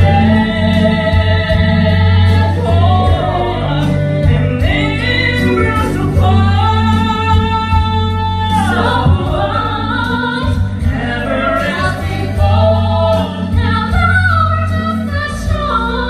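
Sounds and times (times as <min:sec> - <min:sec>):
man singing: 0:00.0 - 0:13.6
amplified musical accompaniment: 0:00.0 - 0:16.0
woman singing: 0:00.0 - 0:16.0.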